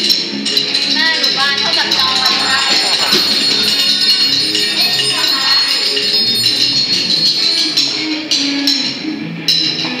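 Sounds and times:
cymbals and hand percussion: 0.1 - 9.9.

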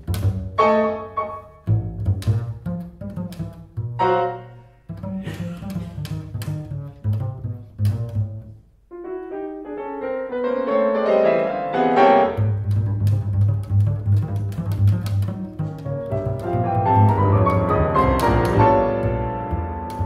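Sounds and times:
double bass: 0.0 - 20.0
piano: 0.0 - 20.0.

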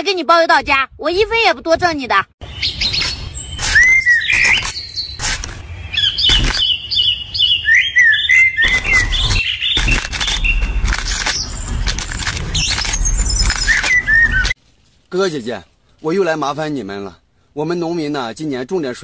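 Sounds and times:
small birds chirping: 2.4 - 14.6.

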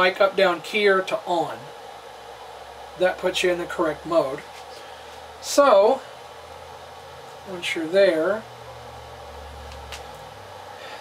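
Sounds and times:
radio equipment hum and hiss: 0.0 - 11.0.

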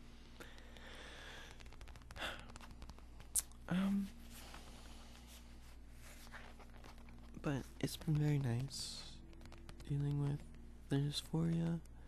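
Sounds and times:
soft breath: 0.0 - 3.1, 3.7 - 6.6.

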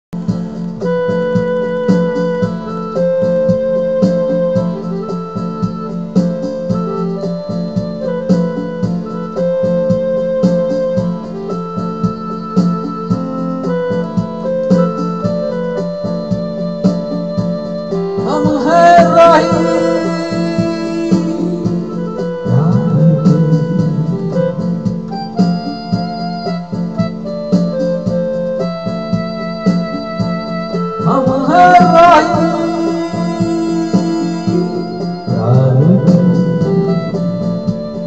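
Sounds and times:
electronic keyboard chords: 0.2 - 38.0
rhythm-box beat: 0.2 - 38.0
man singing: 18.2 - 24.5, 31.0 - 37.4.

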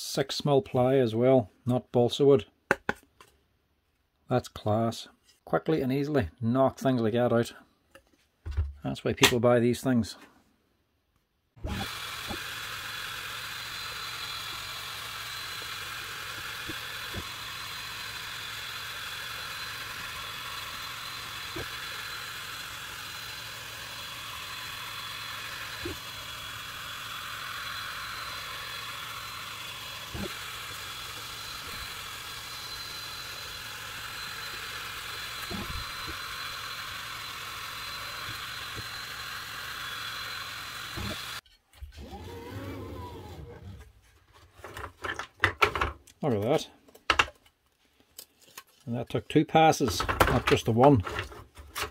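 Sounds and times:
laser engraver whirring whine: 11.6 - 41.4.

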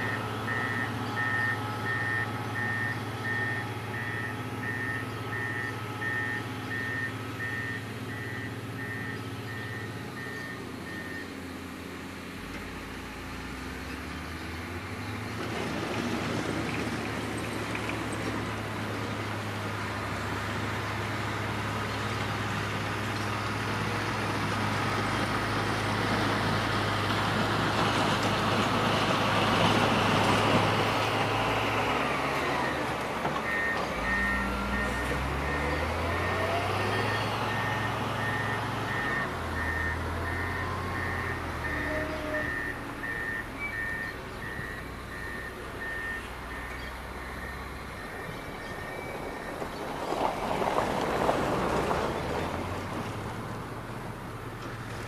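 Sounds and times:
reverse alarm beeping: 0.0 - 11.3, 33.4 - 49.6
diesel engine working: 0.0 - 55.0.

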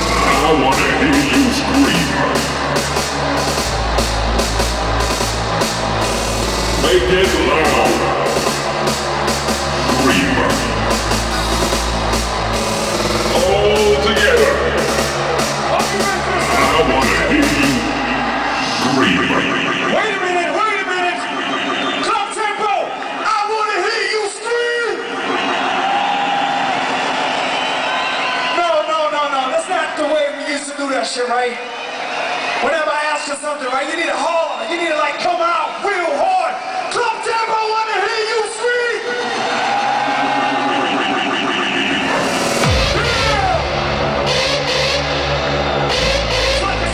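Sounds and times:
fast pulsing synth layer: 0.0 - 23.2, 40.0 - 46.9
hardstyle dance music: 0.0 - 27.8, 37.8 - 46.9.

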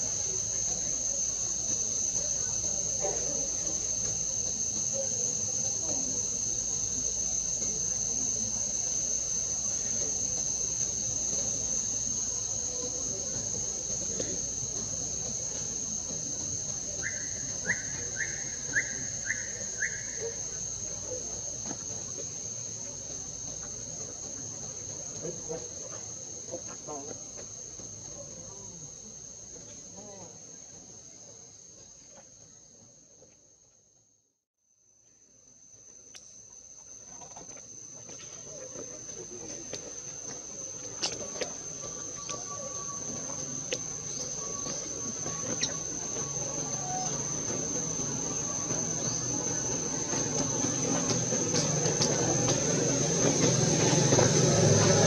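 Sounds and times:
high-pitched insect drone: 0.0 - 32.8, 35.6 - 55.0.

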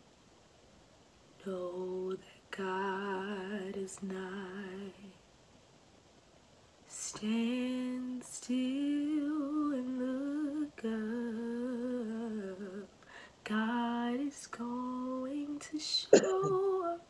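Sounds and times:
woman singing unaccompanied: 1.4 - 5.2, 6.9 - 17.0.

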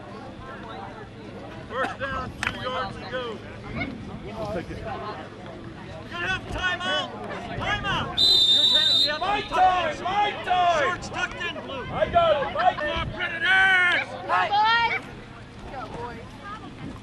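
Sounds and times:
players and spectators shouting: 6.0 - 15.3
shrill referee's whistle blast: 8.2 - 9.6.

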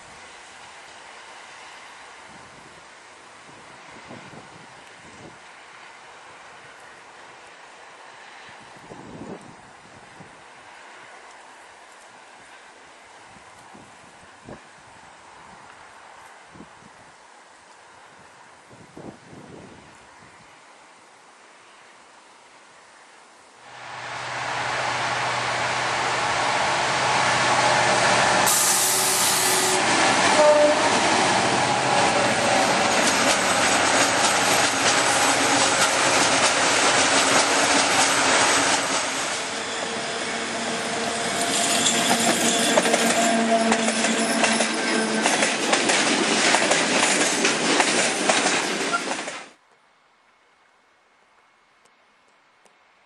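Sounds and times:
diesel locomotive engine passing: 23.7 - 49.4
freight wagon wheels rattling on rail: 29.8 - 49.5.

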